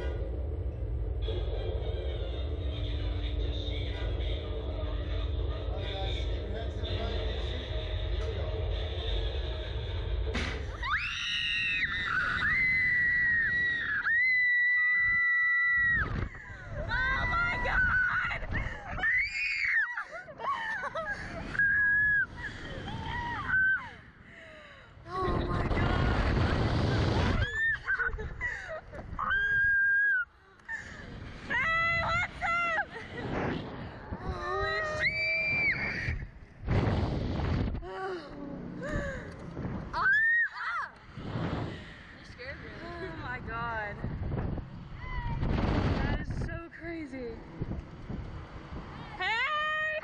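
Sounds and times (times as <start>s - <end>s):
women screaming and laughing: 10.8s - 24.0s, 27.4s - 30.9s
wind gusts over microphone: 25.1s - 29.7s, 31.0s - 38.0s, 38.8s - 40.3s, 41.1s - 50.0s.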